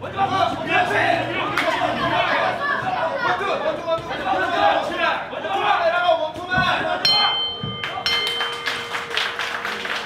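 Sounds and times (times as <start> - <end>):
boxing ring bell: 7.0 - 9.8
crowd applause: 7.8 - 10.0.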